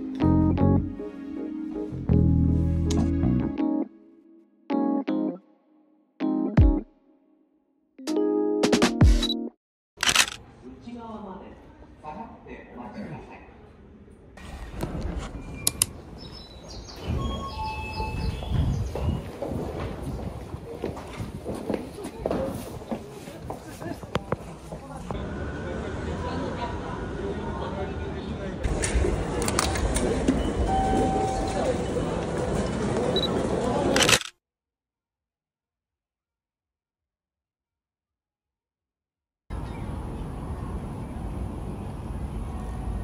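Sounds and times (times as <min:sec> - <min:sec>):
people walking: 0:18.0 - 0:25.2, 0:28.7 - 0:33.9
footsteps: 0:18.2 - 0:25.2.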